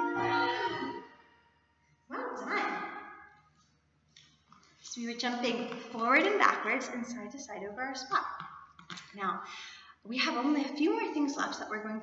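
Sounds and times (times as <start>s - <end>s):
children's music: 0.0s - 1.2s.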